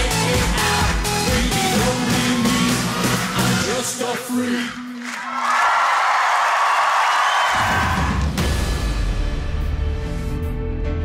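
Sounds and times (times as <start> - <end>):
live pop band with male singer: 0.0 - 4.8
audience cheering and screaming: 5.0 - 8.6.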